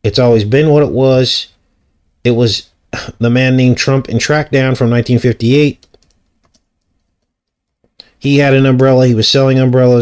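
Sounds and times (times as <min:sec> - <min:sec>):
faint keyboard keystrokes: 0:05.7 - 0:08.0.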